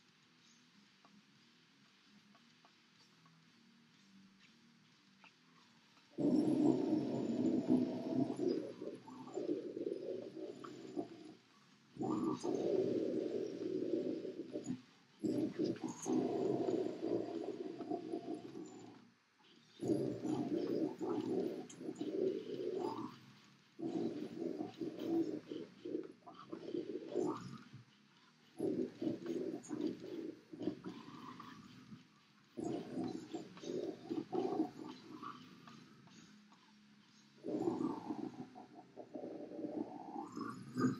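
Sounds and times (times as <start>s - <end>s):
guttural growl vocals: 6.2s - 11.4s, 12.0s - 19.0s, 19.8s - 23.2s, 23.8s - 27.7s, 28.6s - 31.8s, 32.6s - 35.7s, 37.4s - 40.9s.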